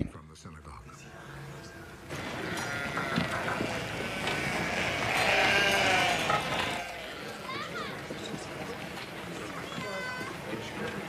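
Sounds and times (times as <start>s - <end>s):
busy background noise: 0.0s - 11.0s
sheep bleating: 2.2s - 7.7s.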